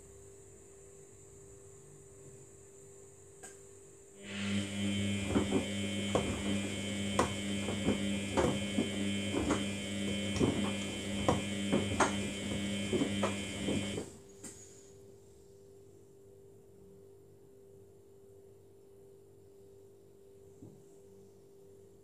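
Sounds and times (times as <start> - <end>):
washing machine motor hum: 4.2 - 14.3
laundry knocking and splashing: 4.9 - 14.1.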